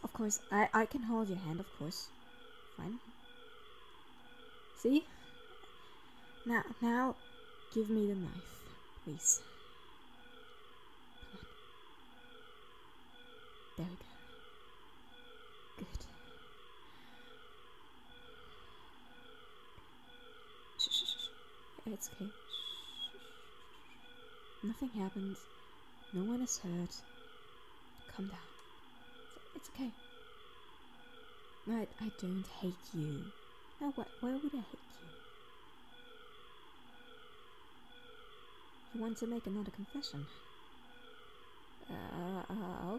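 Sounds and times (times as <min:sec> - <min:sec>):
faint siren wailing: 0:00.0 - 0:42.9
steady high tone: 0:00.0 - 0:42.9.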